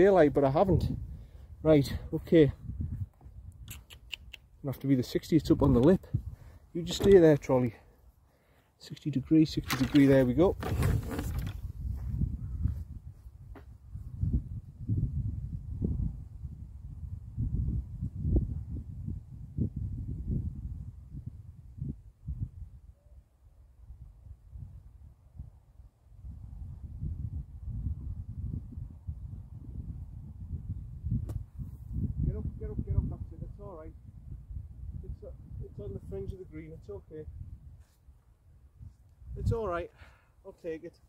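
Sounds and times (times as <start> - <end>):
wind buffeting microphone: 0.0 - 7.6, 9.4 - 22.9, 23.9 - 37.8, 38.5 - 39.8.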